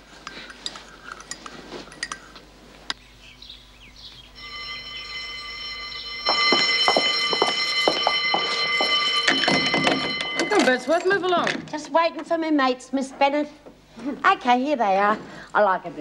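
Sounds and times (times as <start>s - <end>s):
electric alarm bell ringing: 4.2s - 11.6s.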